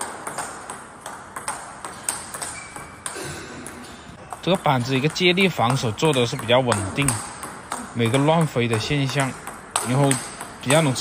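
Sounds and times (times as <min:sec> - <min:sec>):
table tennis ball ticking: 0:00.0 - 0:11.0.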